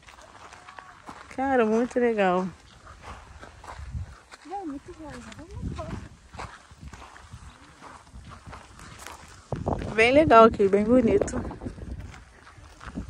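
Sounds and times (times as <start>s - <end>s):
footsteps on gravel: 0.0s - 13.0s
wind on microphone: 1.6s - 13.0s.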